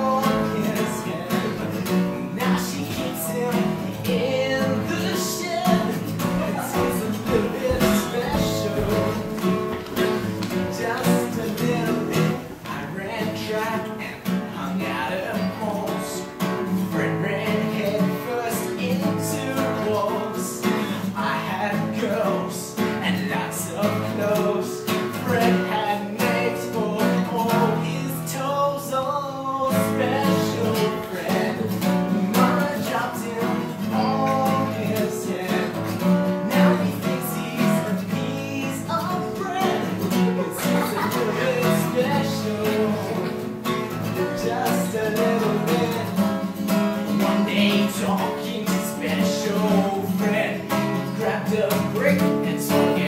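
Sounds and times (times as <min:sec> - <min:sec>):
acoustic guitar strumming: 0:00.0 - 0:53.0
man singing: 0:00.0 - 0:53.0.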